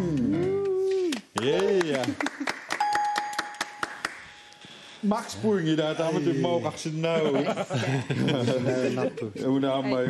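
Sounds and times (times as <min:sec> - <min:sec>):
electronic ding: 0:02.8 - 0:05.0.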